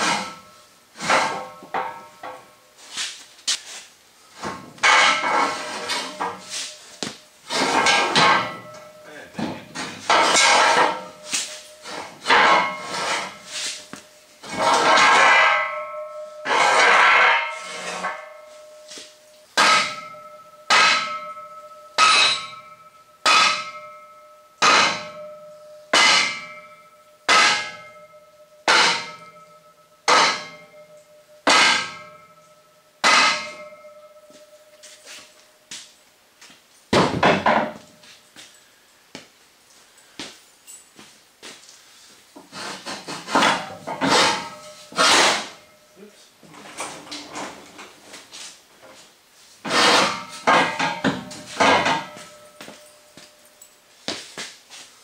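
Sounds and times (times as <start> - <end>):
steel ramp scraping and rattling: 0.0 - 2.5, 4.3 - 18.8, 42.4 - 45.8, 46.5 - 49.0, 49.6 - 52.6
sledgehammer clanging on steel: 0.0 - 2.6, 4.4 - 35.9, 36.9 - 38.6, 42.4 - 49.0, 49.6 - 54.5.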